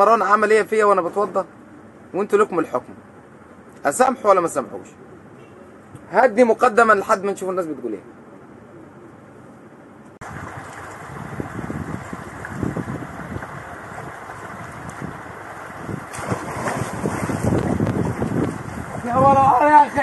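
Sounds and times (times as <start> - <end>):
water splashing in a pool: 10.2 - 19.3
wind buffeting microphone: 10.2 - 20.0.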